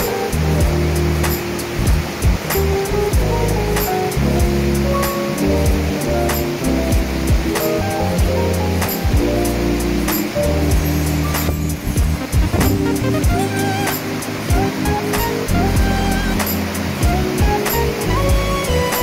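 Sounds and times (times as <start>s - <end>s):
background music with steady beat: 0.0s - 19.0s
rushing mountain stream: 0.0s - 19.0s.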